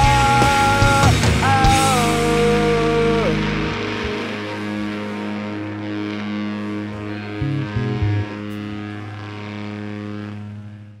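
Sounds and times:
electric guitar feedback drone: 0.0 - 11.0
short low guitar notes: 0.0 - 11.0.

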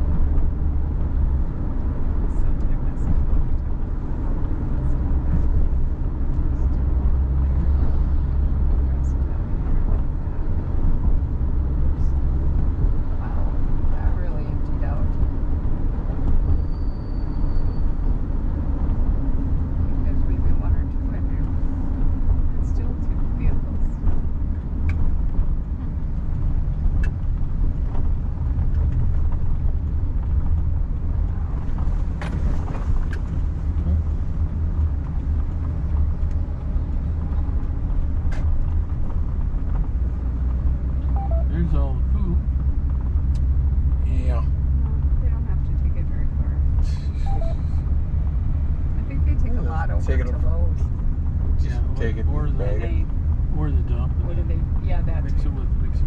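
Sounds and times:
car engine and tyres rumbling: 0.0 - 56.0.

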